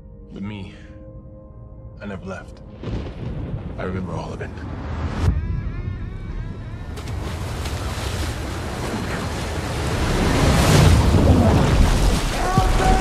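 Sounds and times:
wind gusting: 2.8s - 13.0s.

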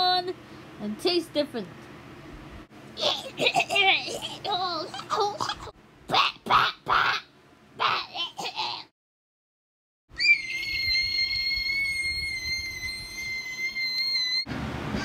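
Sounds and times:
high steady whistle-like tone: 10.2s - 14.5s.

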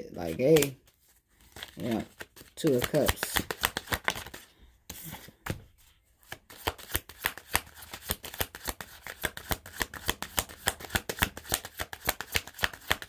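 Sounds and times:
cards being shuffled: 0.2s - 13.0s.

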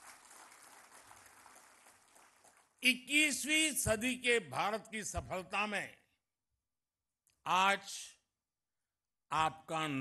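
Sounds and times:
distant audience applause: 0.0s - 2.8s.

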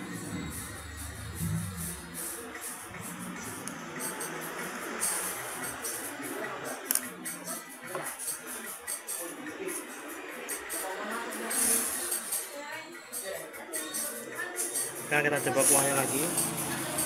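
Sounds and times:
background music: 0.0s - 17.0s.

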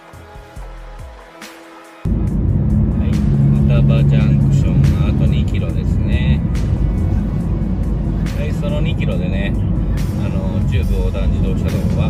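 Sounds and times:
car road and engine rumble: 2.1s - 12.0s
steady low hum: 2.1s - 12.0s.

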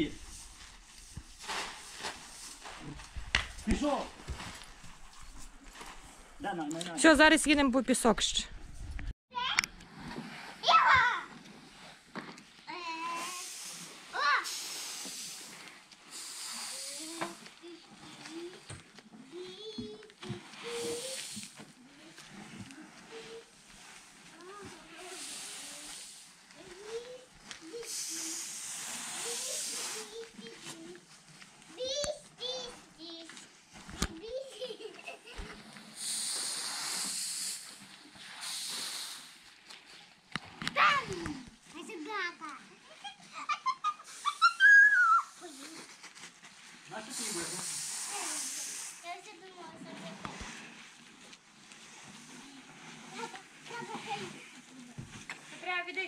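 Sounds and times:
grain poured onto tarp: 0.0s - 6.2s, 11.6s - 18.4s, 20.2s - 31.0s, 34.3s - 40.2s, 45.0s - 55.8s.

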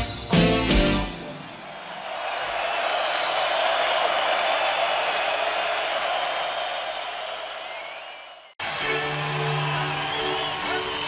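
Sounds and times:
audience applauding: 1.4s - 11.0s.

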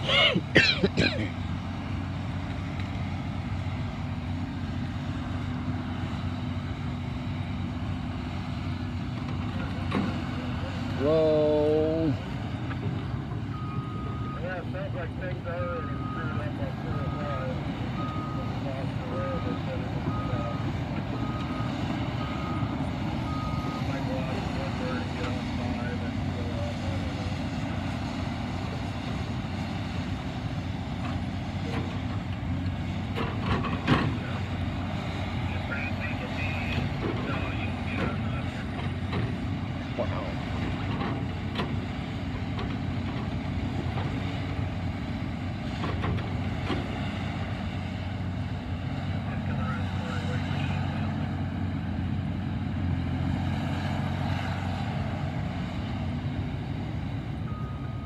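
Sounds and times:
diesel engine running: 0.0s - 58.0s.

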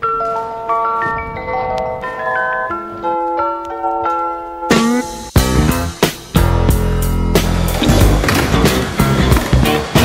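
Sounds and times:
loud music: 4.7s - 10.0s
skateboard wheels rolling on concrete: 7.4s - 10.0s.

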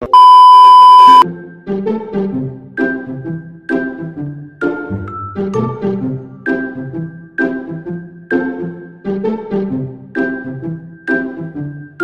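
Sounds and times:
high test-tone beep: 0.0s - 1.2s
light background music: 1.2s - 12.0s.

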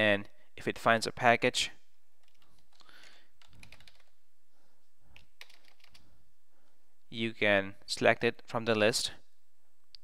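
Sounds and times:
computer keyboard typing: 2.2s - 4.2s, 5.2s - 6.0s.

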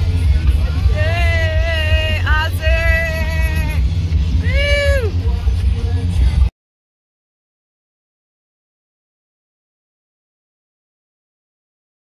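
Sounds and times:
heavy low rumble: 0.0s - 6.5s.

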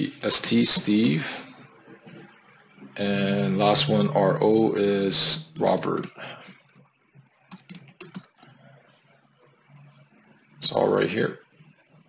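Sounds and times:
computer keyboard keys clicking: 7.5s - 8.4s.

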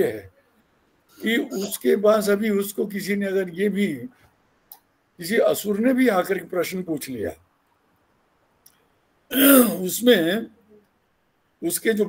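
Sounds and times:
man clearing throat: 9.3s - 9.8s.

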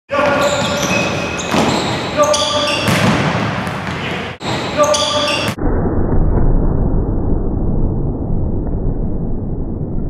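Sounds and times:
sneakers squeaking on gym floor: 0.1s - 5.6s.

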